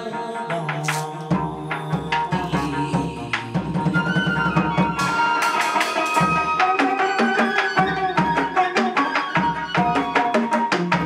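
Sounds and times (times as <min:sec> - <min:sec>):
drums: 0:00.6 - 0:11.0
wooden clapper clicking beat: 0:00.8 - 0:01.3.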